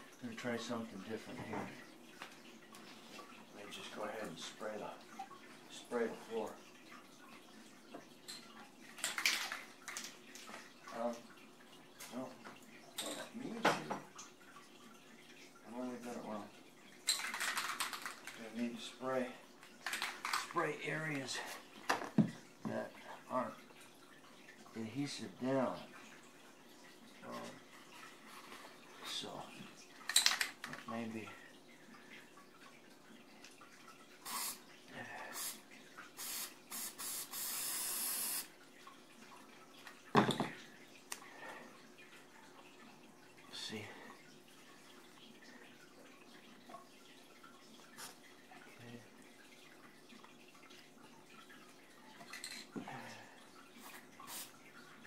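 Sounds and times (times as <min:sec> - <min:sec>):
aerosol can spraying: 0:34.2 - 0:34.6, 0:36.2 - 0:38.4.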